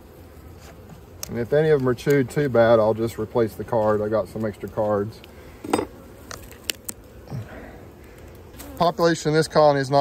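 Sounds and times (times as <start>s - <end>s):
gloved hand handling wood: 0.3s - 2.4s.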